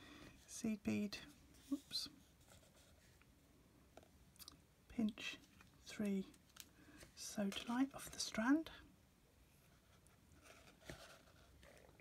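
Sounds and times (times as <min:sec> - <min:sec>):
faint bead handling noise: 0:04.0 - 0:08.6.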